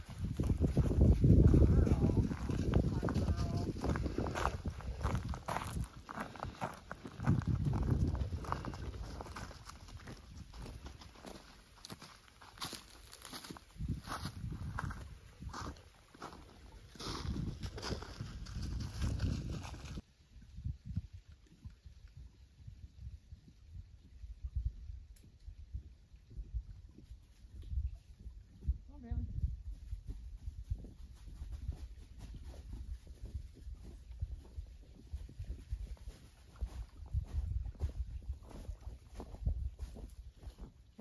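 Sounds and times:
wind rumbling on microphone: 0:00.0 - 0:12.0, 0:12.6 - 0:41.0
footsteps crunching on snow and gravel: 0:00.0 - 0:20.0, 0:30.6 - 0:41.0.

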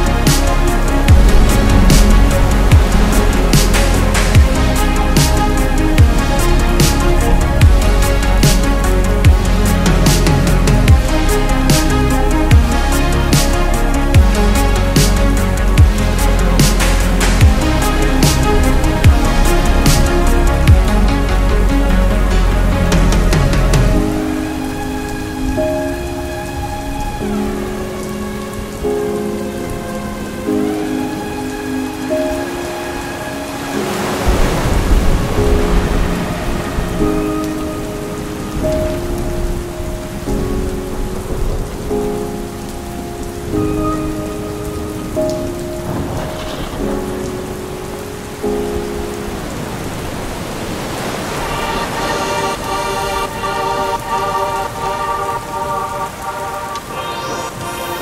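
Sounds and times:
slow synth music: 0:00.0 - 0:58.0
steady rain: 0:00.0 - 0:58.0
thunder rumble: 0:00.0 - 0:58.0.

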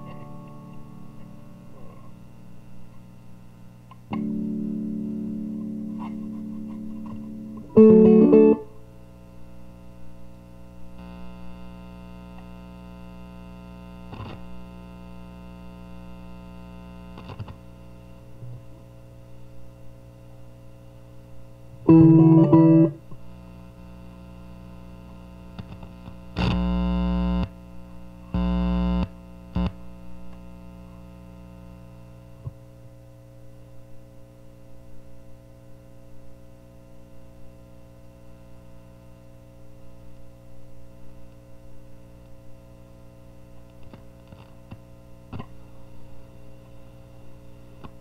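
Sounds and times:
distorted electric guitar: 0:00.0 - 0:09.0, 0:10.5 - 0:17.7, 0:21.8 - 0:32.0
faint amp hum: 0:00.0 - 0:48.0.

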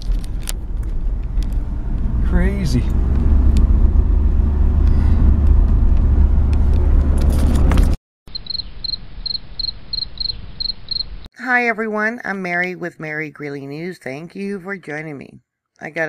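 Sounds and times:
road and engine noise in truck cab: 0:00.0 - 0:08.0
faint high chirp: 0:08.3 - 0:11.2.

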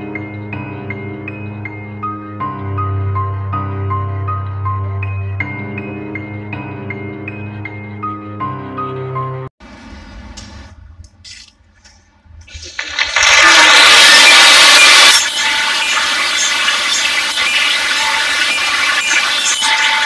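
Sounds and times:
audience applause: 0:12.6 - 0:20.0.

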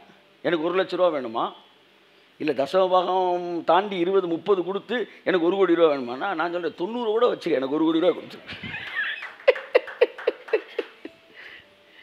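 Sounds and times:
man laughing: 0:08.1 - 0:11.2
faint breathing: 0:11.2 - 0:12.0.

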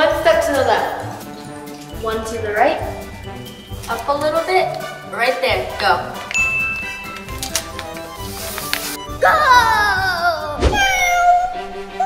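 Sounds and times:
light background music: 0:00.0 - 0:12.0
cat meowing: 0:10.7 - 0:11.7.

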